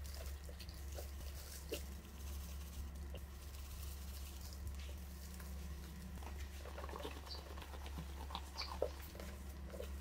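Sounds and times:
hands rubbing salt into octopus: 0.0s - 10.0s
low hum: 0.0s - 10.0s.

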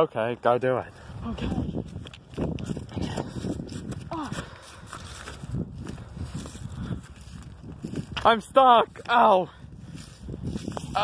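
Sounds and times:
wind buffeting microphone: 1.0s - 11.0s
footsteps on grass: 1.8s - 8.4s, 9.9s - 11.0s.

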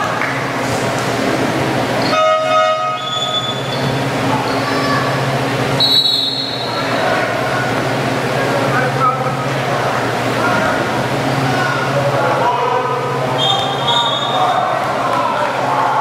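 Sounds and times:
echoing gym chatter: 0.0s - 16.0s
scoreboard horn blast: 2.1s - 3.1s
referee's whistle: 2.9s - 4.6s, 5.8s - 6.8s, 13.4s - 14.6s.

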